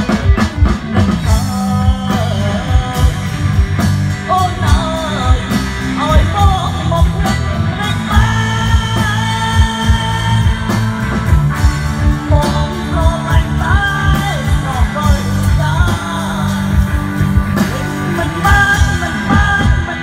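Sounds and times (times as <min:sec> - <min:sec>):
man singing into a microphone: 0:00.0 - 0:11.2, 0:12.1 - 0:20.0
bass guitar: 0:00.0 - 0:20.0
electric guitar: 0:00.0 - 0:20.0
keyboards: 0:00.0 - 0:20.0
steady drum beat: 0:00.0 - 0:20.0.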